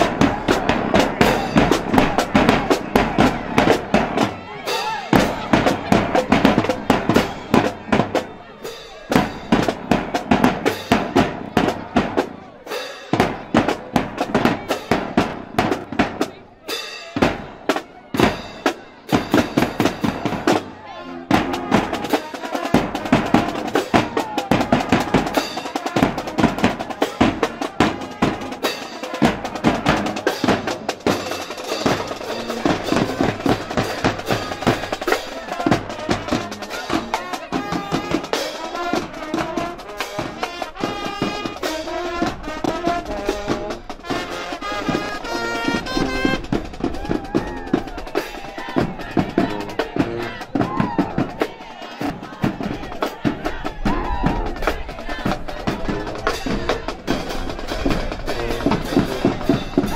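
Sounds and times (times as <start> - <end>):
bass drum and snare drums: 0.0 - 20.7, 21.3 - 59.9
marching band playing: 0.0 - 59.9
sousaphones and brass: 0.0 - 59.9.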